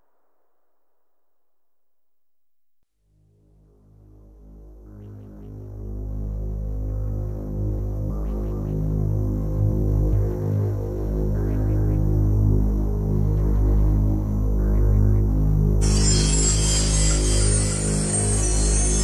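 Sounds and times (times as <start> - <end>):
higher synth flickers: 15.8 - 19.0.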